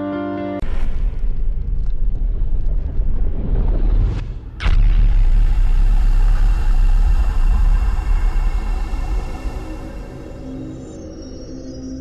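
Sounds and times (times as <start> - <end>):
loud deep rumble: 0.6 - 11.5.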